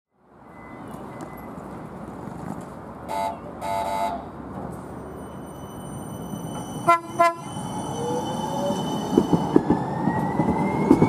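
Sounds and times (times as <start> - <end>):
light-rail trolley horn toots: 3.1 - 4.3, 6.8 - 7.6.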